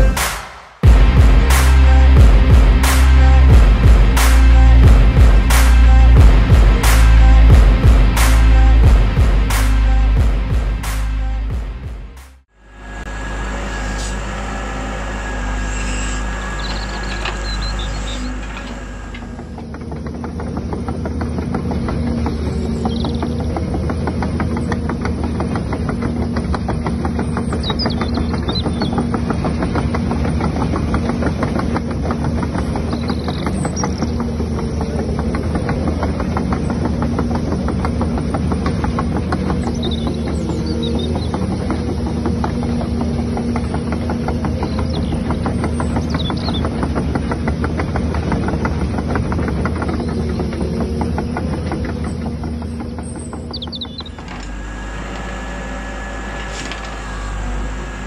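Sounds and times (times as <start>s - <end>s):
model excavator motors rattling: 12.9s - 58.0s
faint bird chirps: 15.6s - 19.4s.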